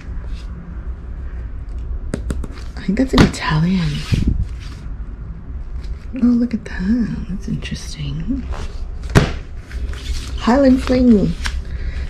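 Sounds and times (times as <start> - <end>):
steady low rumble: 0.0 - 12.0
cardboard sleeve rustling: 8.5 - 12.0.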